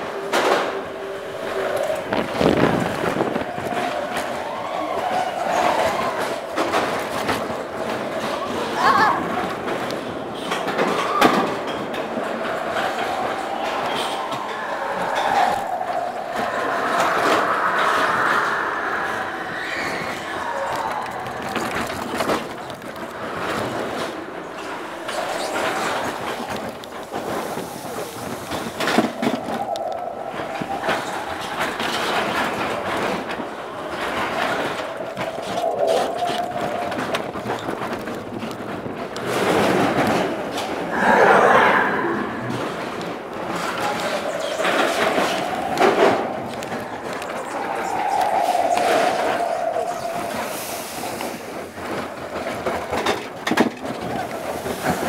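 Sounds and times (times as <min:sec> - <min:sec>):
roller coaster rolling rumble: 0:00.0 - 0:55.0.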